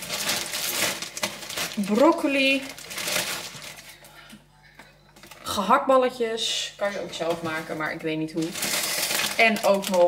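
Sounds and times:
plastic bag rustling and crinkling: 0.0s - 4.1s, 6.8s - 10.0s.

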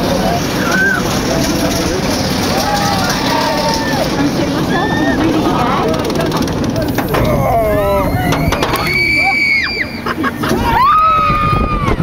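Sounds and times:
roller coaster car rumble: 0.0s - 12.0s
riders shouting and squealing: 0.2s - 6.2s, 6.8s - 12.0s.

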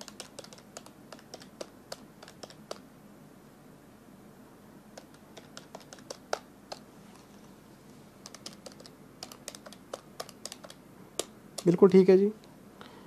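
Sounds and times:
calculator keys clicking: 0.0s - 2.8s, 5.0s - 6.9s, 8.2s - 11.8s.

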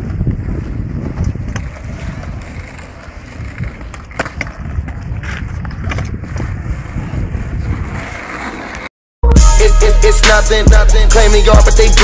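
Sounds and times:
wind rumbling on microphone: 0.0s - 8.3s
scooter wheels rolling on asphalt: 0.0s - 8.9s.

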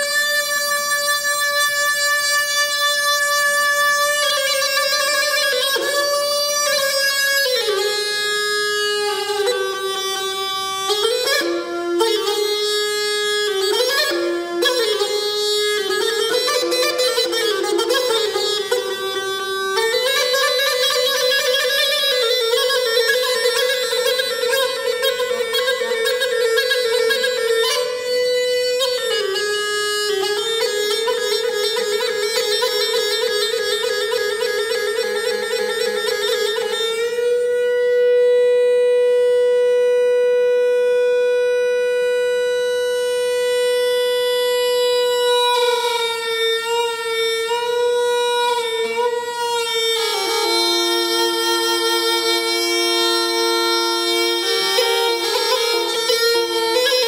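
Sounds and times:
bagpipe playing a melody: 0.0s - 57.0s.

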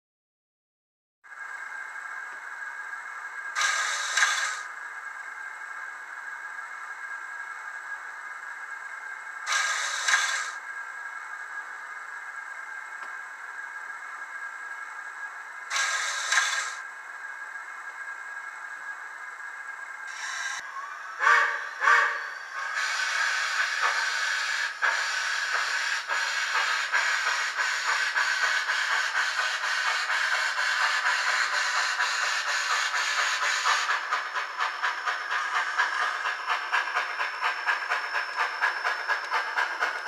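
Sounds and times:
sharp hiss bursts: 3.6s - 4.7s, 9.5s - 10.6s, 15.7s - 16.8s, 21.2s - 37.6s
steam hiss through small speaker: 3.6s - 4.7s, 15.7s - 16.8s, 20.1s - 38.2s.

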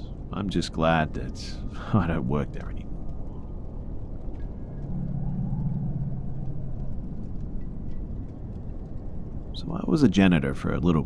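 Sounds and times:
low rumbling drone: 1.4s - 9.7s
deep hum: 2.8s - 9.7s.

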